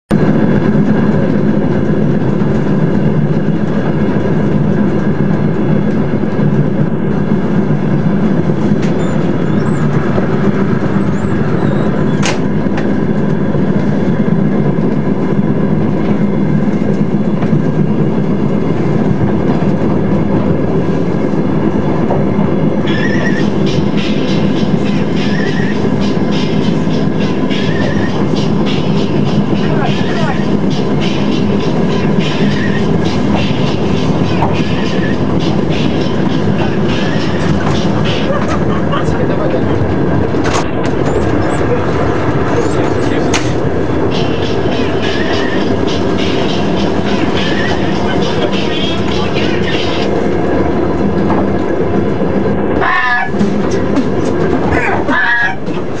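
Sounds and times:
moving vehicle running noise: 0:00.1 - 0:56.0.

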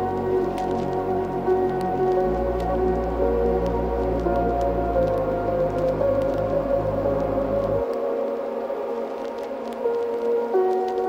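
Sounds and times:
ambient synth pad chords: 0:00.0 - 0:11.0
faint crackle: 0:00.0 - 0:11.0.

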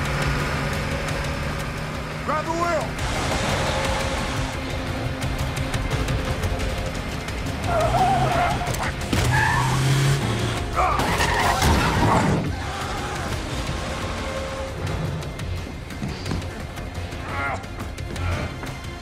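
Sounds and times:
car engine running hard: 0:00.0 - 0:17.2
film score music: 0:00.0 - 0:19.0.

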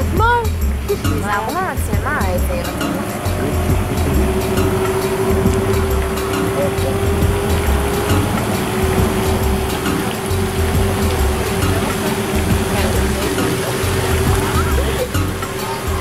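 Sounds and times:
low rumbling: 0:00.0 - 0:16.0
motor humming: 0:00.0 - 0:16.0
waterfall rushing: 0:00.0 - 0:16.0.

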